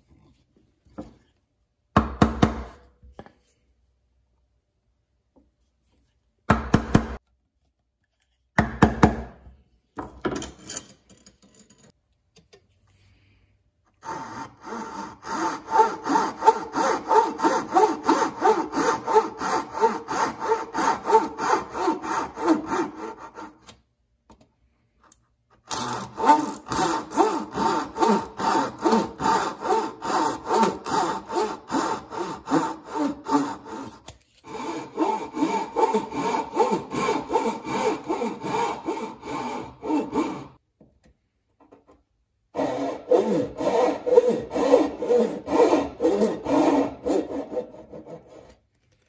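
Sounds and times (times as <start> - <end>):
hand saw cutting wood: 14.0 - 23.7, 25.7 - 40.6, 42.6 - 48.6.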